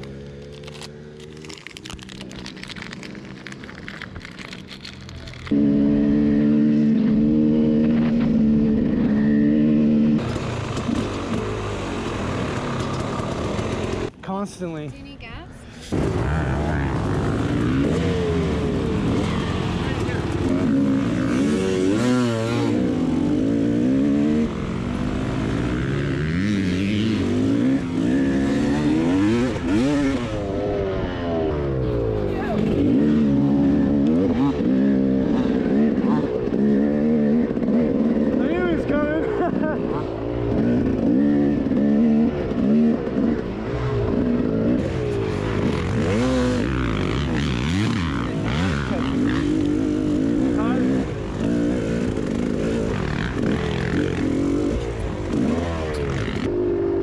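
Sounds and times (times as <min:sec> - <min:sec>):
dirt bike engine revving: 0:05.4 - 0:14.1, 0:15.9 - 0:57.0.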